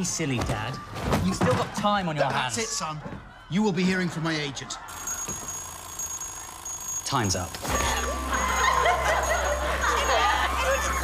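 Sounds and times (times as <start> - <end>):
alarm clock bell ringing: 4.9 - 11.0.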